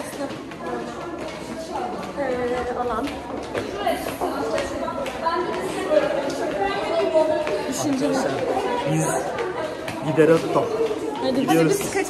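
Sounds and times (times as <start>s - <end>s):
people talking over each other: 0.0s - 12.0s.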